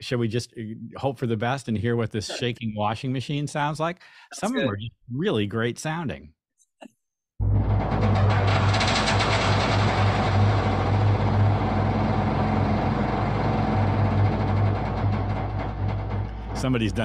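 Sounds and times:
strong low hum: 7.4 - 17.0
processed washing machine noise: 7.8 - 16.3.

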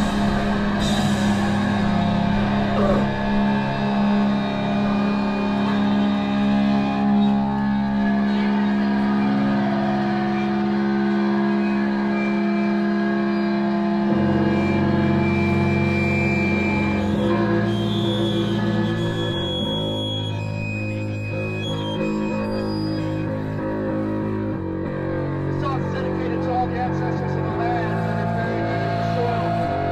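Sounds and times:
droning electric guitars and bass: 0.0 - 29.9.

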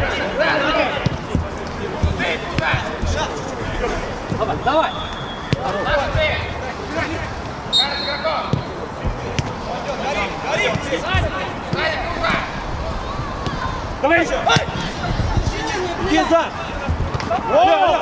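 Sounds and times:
players shouting: 0.0 - 18.0
boot kicking football: 0.8 - 6.6, 8.4 - 12.5, 14.4 - 14.8, 15.4 - 18.0.

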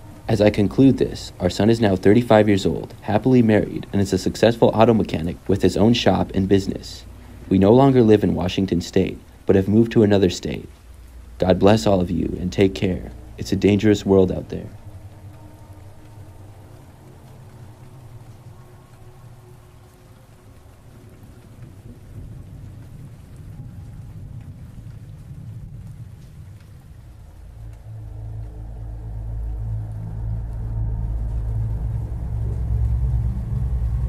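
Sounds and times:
deep thunder rumble: 0.0 - 34.0
steady rain: 0.0 - 34.0.

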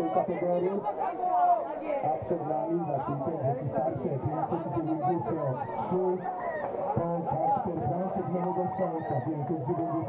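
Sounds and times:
man talking: 0.0 - 1.0, 2.0 - 10.0
people chattering: 0.0 - 10.0.

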